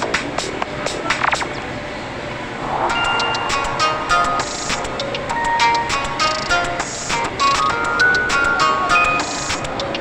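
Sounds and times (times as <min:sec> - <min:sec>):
clipped melody notes: 0:02.8 - 0:07.0
sharp percussive beat: 0:02.9 - 0:06.6.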